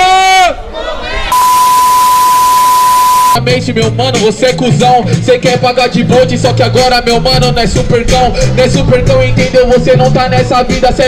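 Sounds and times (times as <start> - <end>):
steady test-tone beep: 1.3 - 3.4.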